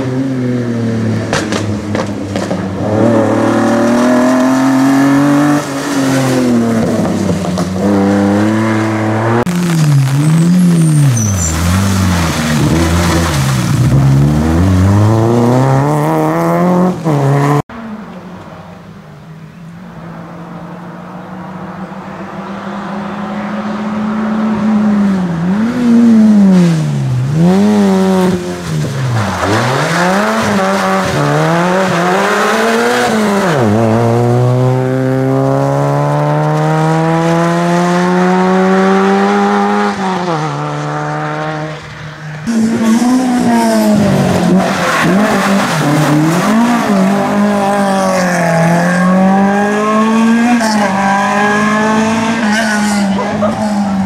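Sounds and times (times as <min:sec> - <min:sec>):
rally car engine revving: 0:00.0 - 0:17.8, 0:21.8 - 0:54.0
rally car approaching revving: 0:00.0 - 0:18.7, 0:19.6 - 0:54.0.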